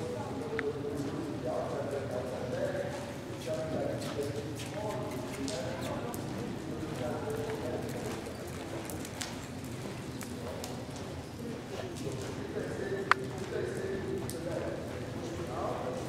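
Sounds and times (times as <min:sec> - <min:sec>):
people talking: 0:00.0 - 0:09.2, 0:10.3 - 0:16.0.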